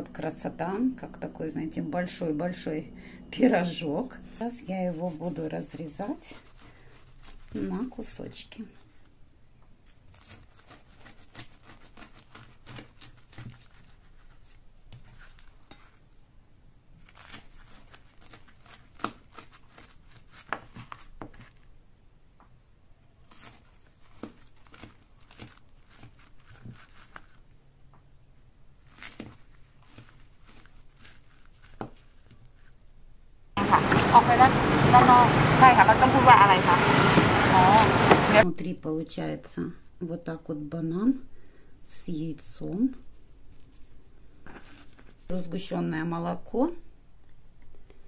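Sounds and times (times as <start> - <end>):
knife cutting crisp pancake: 10.1 - 16.0
street noise: 33.6 - 38.4.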